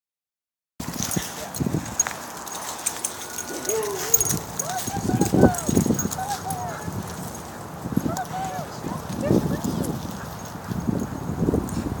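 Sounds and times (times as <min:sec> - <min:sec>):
low scuffling: 0:00.8 - 0:10.5.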